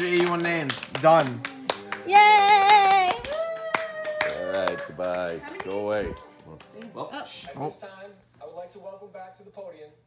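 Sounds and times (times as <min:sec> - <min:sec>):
hand clapping: 0:00.0 - 0:07.1.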